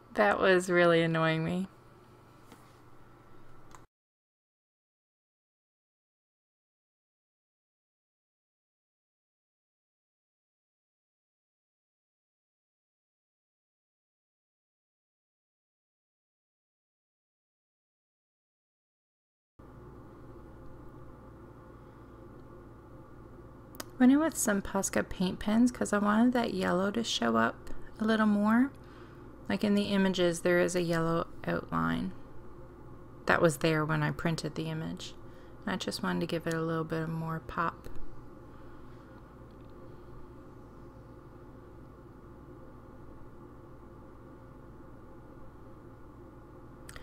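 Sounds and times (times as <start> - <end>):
steady low hum: 19.6 - 47.0.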